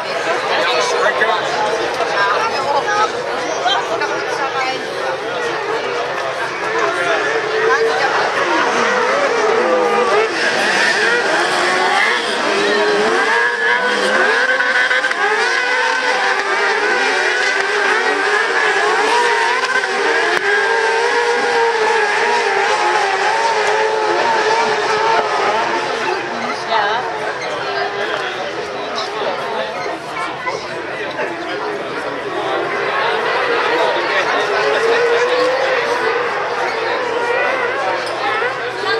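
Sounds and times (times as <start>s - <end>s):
racing engines revving: 0.0s - 38.9s.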